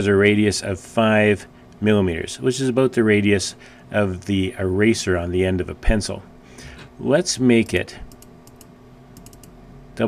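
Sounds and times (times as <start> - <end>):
computer keyboard and mouse clicks: 7.6 - 9.6.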